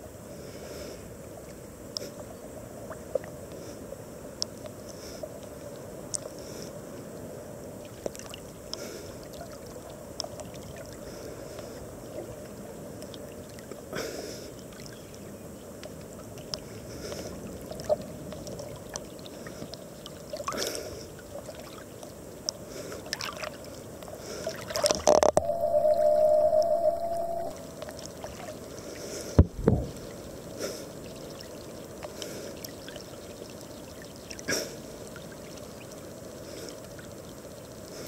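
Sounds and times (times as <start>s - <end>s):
splash: 23.0s - 23.8s
muffled underwater water rush: 23.0s - 37.8s
steady hum: 25.2s - 28.8s
water thumping against camera: 29.4s - 30.0s.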